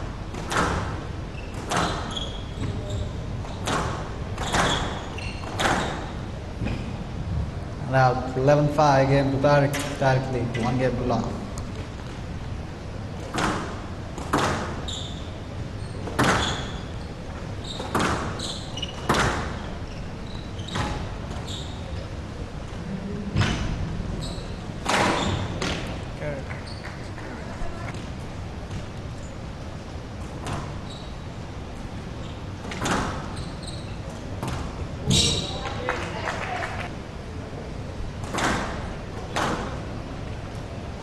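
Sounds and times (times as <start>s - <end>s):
shoes squeaking on court: 0.4s - 6.9s, 13.2s - 22.2s, 24.2s - 26.0s, 26.6s - 36.1s.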